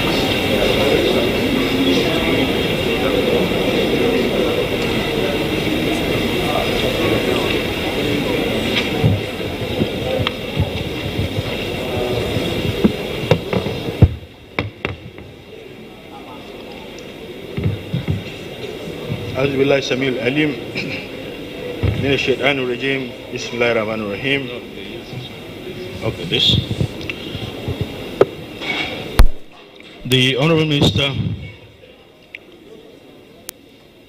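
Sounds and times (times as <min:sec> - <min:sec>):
murmur of many voices: 0:00.0 - 0:34.0
microphone knocks and thumps: 0:09.0 - 0:11.6, 0:12.2 - 0:15.4, 0:17.6 - 0:18.4, 0:21.8 - 0:22.1, 0:26.4 - 0:28.0, 0:30.8 - 0:31.6.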